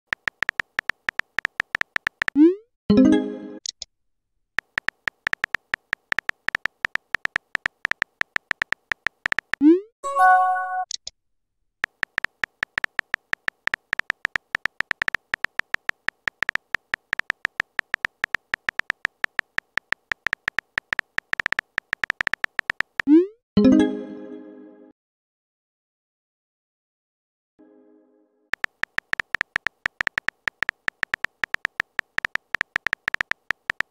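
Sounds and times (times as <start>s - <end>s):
phone keyboard key clicks: 0.1s - 2.4s, 4.6s - 9.6s, 11.8s - 23.1s, 28.6s - 33.9s.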